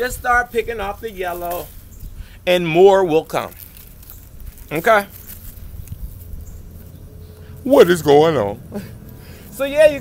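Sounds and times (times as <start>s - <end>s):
leaf rustling: 0.0s - 10.0s.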